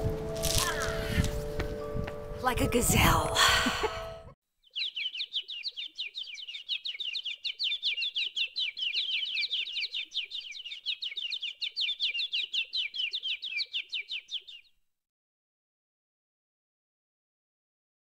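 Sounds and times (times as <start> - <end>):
bird chirping: 4.6 - 14.8.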